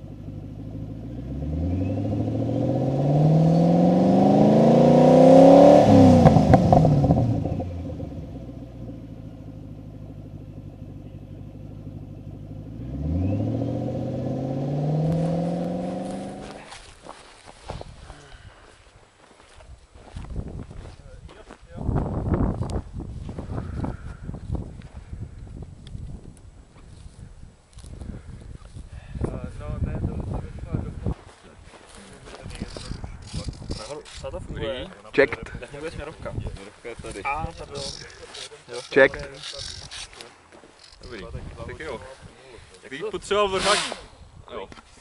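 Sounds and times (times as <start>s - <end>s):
wind buffeting microphone: 19.6s - 31.3s, 32.3s - 34.7s, 35.6s - 38.0s, 41.1s - 42.4s
man's voice burst with hiss: 43.5s - 44.1s.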